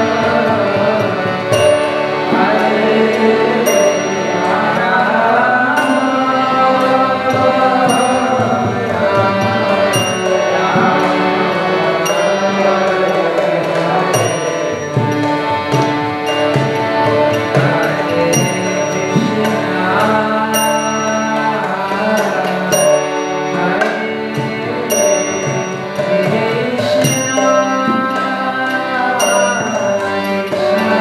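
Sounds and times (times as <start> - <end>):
harmonium chords: 0.0 - 31.0
ringing metallic strike: 7.8 - 8.6.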